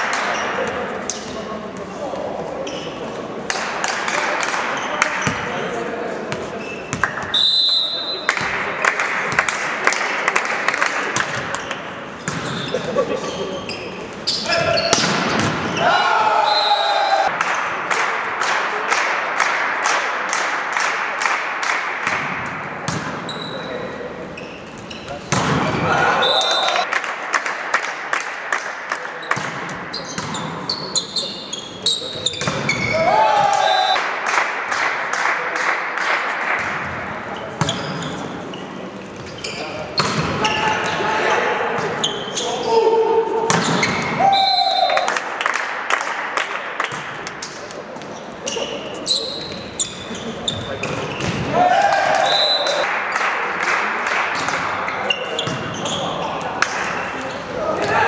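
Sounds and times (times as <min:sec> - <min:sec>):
crowd noise and shouts: 0:00.0 - 0:58.0
short whistle blasts: 0:07.3 - 0:08.2
spectators clapping rhythmically: 0:08.3 - 0:11.4, 0:17.3 - 0:22.2, 0:26.4 - 0:29.3, 0:33.9 - 0:36.7, 0:44.8 - 0:47.6, 0:51.8 - 0:54.8.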